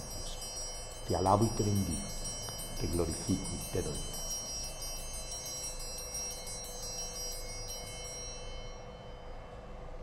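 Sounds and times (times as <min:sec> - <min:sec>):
altar bells ringing: 0:00.0 - 0:10.0.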